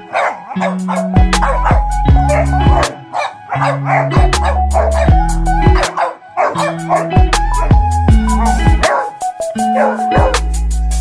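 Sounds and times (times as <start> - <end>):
dogs barking in play: 0.0 - 10.4
music with bass-heavy beat: 0.6 - 3.1, 4.0 - 11.0.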